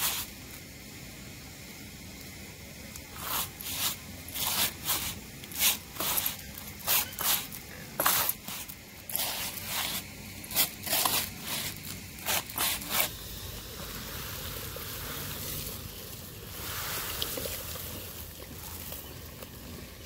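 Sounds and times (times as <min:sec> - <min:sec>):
grains scraping on bamboo tray: 0:03.1 - 0:13.2.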